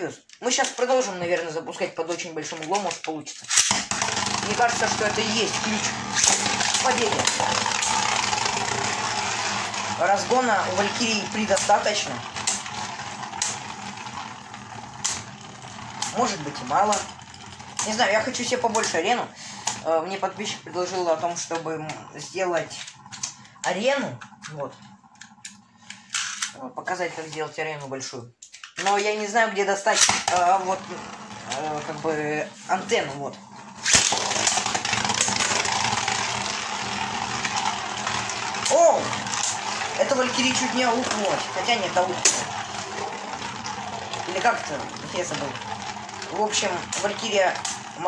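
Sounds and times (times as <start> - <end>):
spinning tops whirring on metal: 3.4 - 23.9, 29.9 - 48.0.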